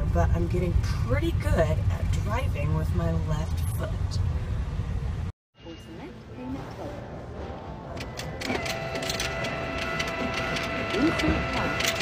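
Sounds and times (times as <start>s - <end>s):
banknote acceptor motor whine: 8.0s - 12.0s.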